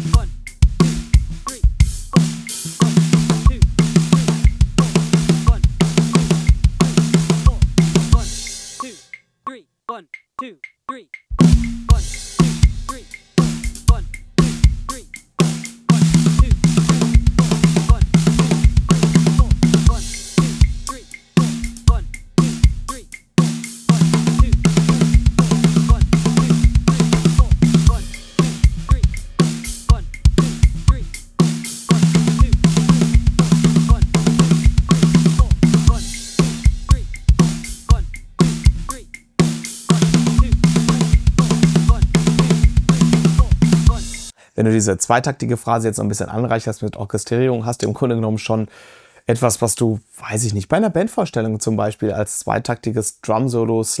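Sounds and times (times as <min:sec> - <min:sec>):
drum kit fill: 0:00.0 - 0:09.2, 0:11.2 - 0:44.4.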